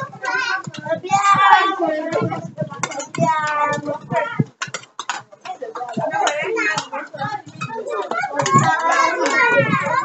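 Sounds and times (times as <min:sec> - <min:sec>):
child singing sing-song line: 0:00.0 - 0:04.4, 0:08.0 - 0:10.0
children's voices: 0:00.0 - 0:04.5, 0:05.8 - 0:10.0.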